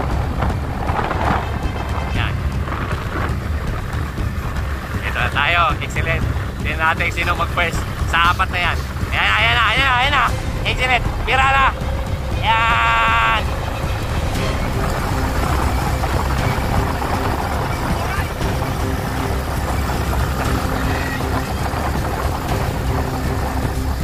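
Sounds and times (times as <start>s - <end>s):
motorcycle engine running: 0.0s - 24.0s
wind rumble on microphone: 0.0s - 24.0s.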